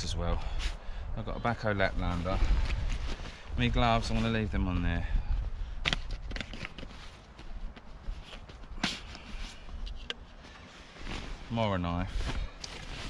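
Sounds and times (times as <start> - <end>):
rustling of gear in a bag: 1.8 - 4.9, 5.8 - 13.0.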